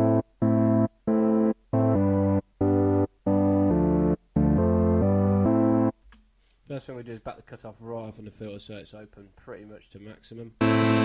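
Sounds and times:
synthesizer playing short notes: 10.6s - 11.0s.

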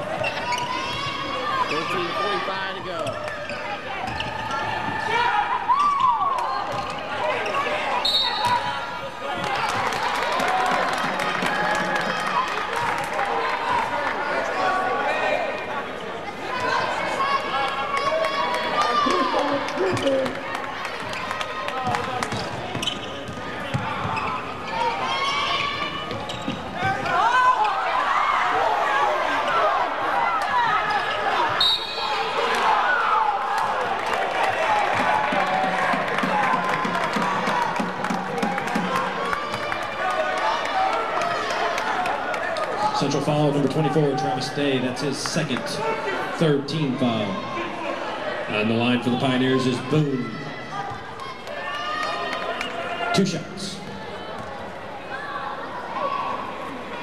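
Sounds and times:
sneakers squeaking: 0.0s - 5.1s, 5.7s - 10.0s, 19.7s - 27.9s
players and crowd shouting: 0.0s - 57.0s.

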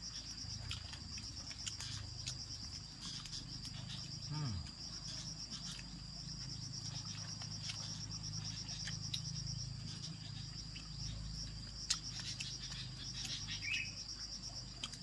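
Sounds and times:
faint low hum: 0.0s - 15.0s
insects chirping in pulsing trill: 0.0s - 15.0s.

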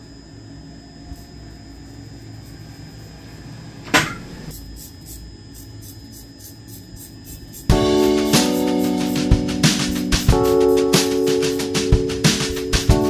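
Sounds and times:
razor scraping stubble: 4.5s - 8.6s.

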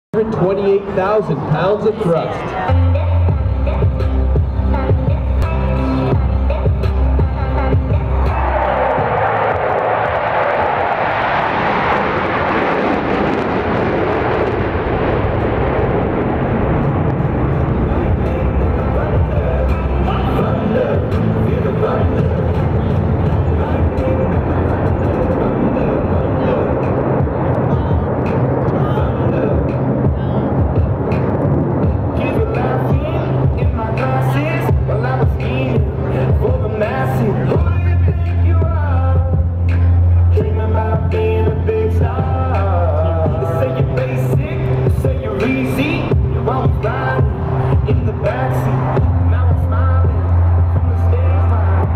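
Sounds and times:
jet noise: 0.2s - 51.9s
music: 1.9s - 10.5s, 14.7s - 51.9s.

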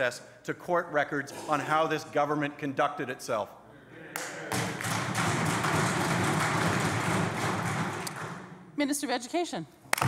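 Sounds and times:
hands clapping: 4.2s - 8.5s
desk-thumping: 4.8s - 8.6s.

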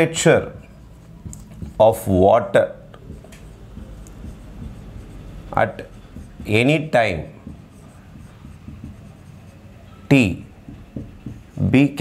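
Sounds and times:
marker writing on whiteboard: 0.0s - 12.0s.

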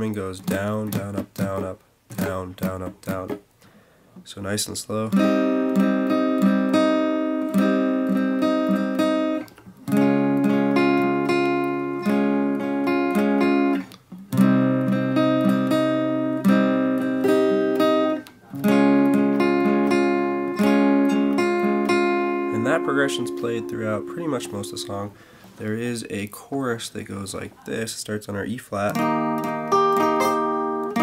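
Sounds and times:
acoustic guitar strumming chords: 0.0s - 3.5s, 5.1s - 25.8s, 28.9s - 31.0s.

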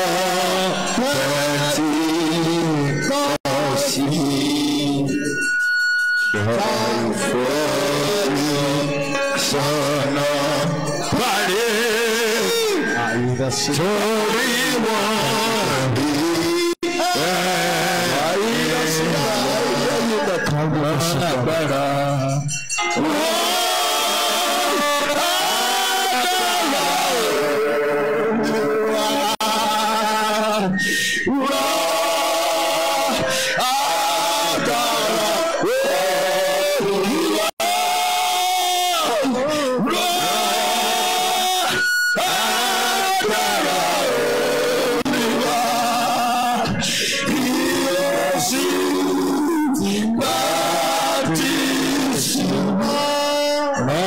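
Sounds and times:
worship singing with music: 0.0s - 54.0s.

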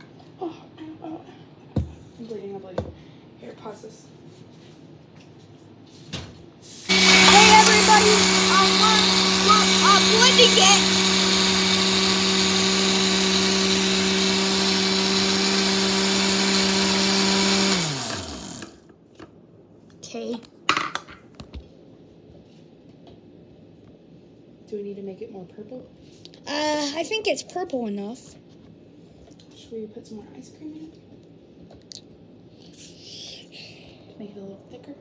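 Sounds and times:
blender running: 6.9s - 18.9s.

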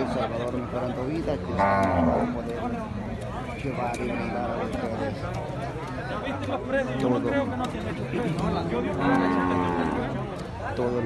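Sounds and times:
cow mooing: 1.5s - 2.4s, 8.9s - 10.2s.

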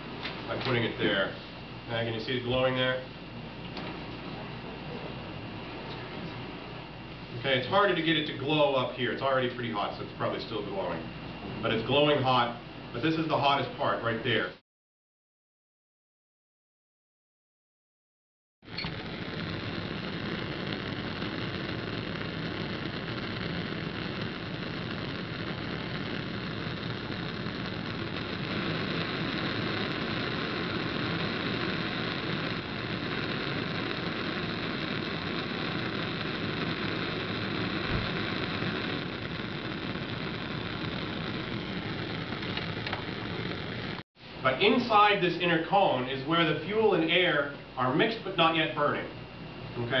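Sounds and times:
bunsen burner flame rushing: 0.0s - 13.6s, 18.7s - 50.0s.

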